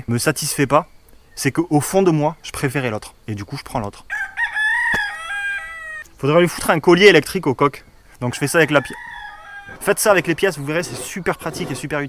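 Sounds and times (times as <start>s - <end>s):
rooster crowing: 4.1s - 6.0s, 8.3s - 11.8s.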